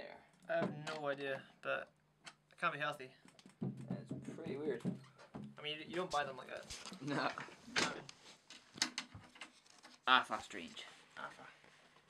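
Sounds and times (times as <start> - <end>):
snare drum clicks and knocks: 3.4 - 5.5.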